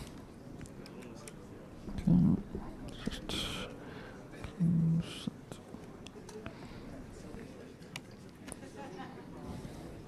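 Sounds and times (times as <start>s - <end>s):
whispered hiss: 0.0s - 7.7s.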